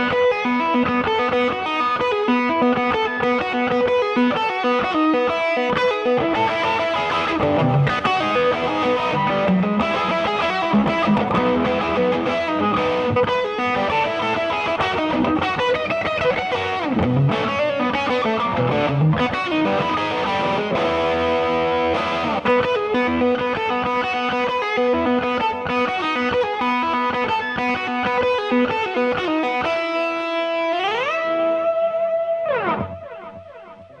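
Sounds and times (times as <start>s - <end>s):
electric guitar lead lines: 0.0s - 34.0s.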